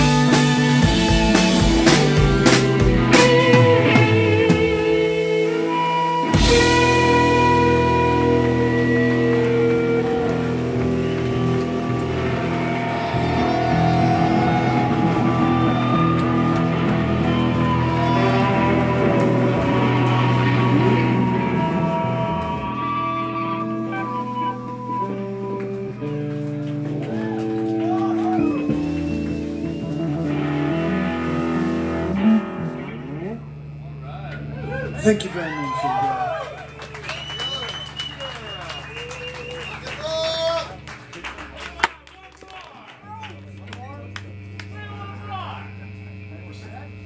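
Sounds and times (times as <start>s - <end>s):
rock band playing live: 0.0s - 41.9s
bass guitar droning: 0.0s - 47.0s
electric guitars droning: 0.0s - 47.0s.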